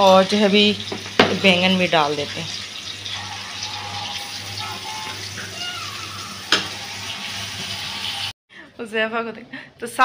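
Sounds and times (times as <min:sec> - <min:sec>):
vegetables sizzling in hot oil: 0:00.0 - 0:08.3.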